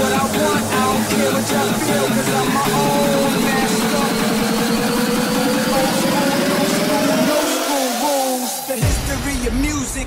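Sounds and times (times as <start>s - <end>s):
fast buzzing bass pattern: 0.0s - 8.3s
rising synth tone: 0.0s - 8.8s.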